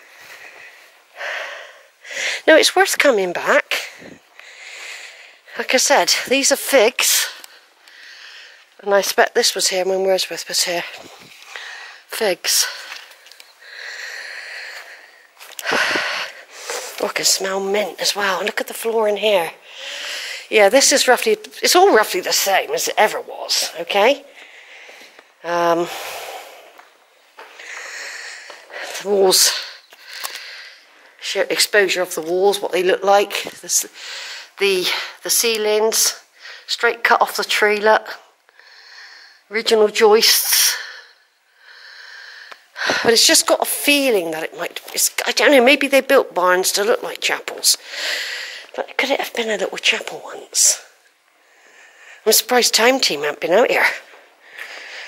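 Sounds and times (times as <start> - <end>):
soft breath near microphone: 0.0 - 2.5, 3.7 - 5.6, 7.1 - 8.8, 10.8 - 17.1, 19.6 - 20.5, 24.2 - 31.2, 33.9 - 35.2, 38.5 - 39.5, 40.5 - 43.2, 47.8 - 48.8, 50.6 - 52.3, 53.8 - 55.0.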